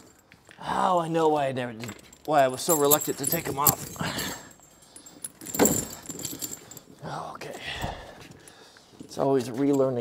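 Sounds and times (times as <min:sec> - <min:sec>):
steel chains clinking and rattling: 0:00.0 - 0:10.0.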